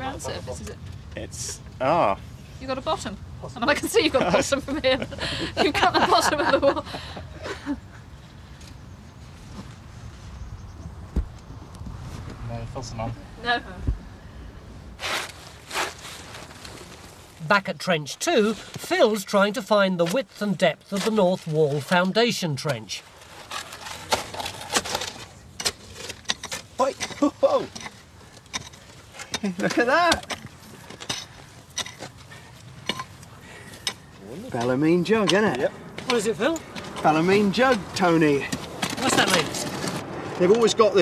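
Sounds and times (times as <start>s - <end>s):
faint outdoor background noise: 0.0s - 41.0s
digging tool scraping soil: 15.0s - 17.0s, 22.7s - 32.0s.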